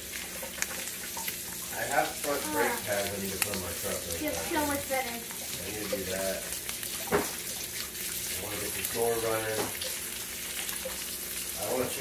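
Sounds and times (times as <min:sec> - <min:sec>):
eggs sizzling in a pan: 0:00.0 - 0:12.0.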